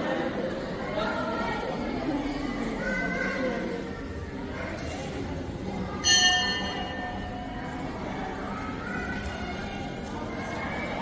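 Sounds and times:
indistinct voices talking: 0:00.0 - 0:11.0.

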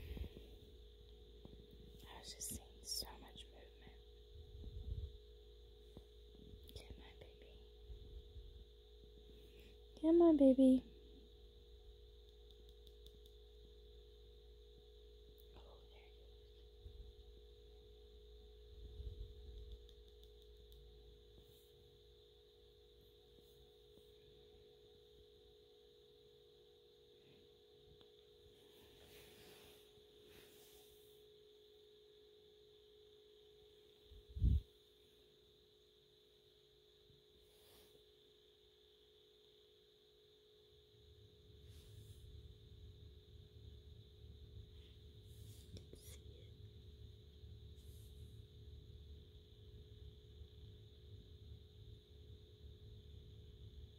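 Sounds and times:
faint electrical hum: 0:00.0 - 0:53.9.

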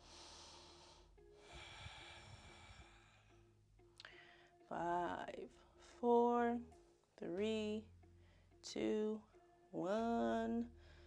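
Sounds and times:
person breathing faintly: 0:00.0 - 0:04.6
faint background music: 0:00.0 - 0:11.0.

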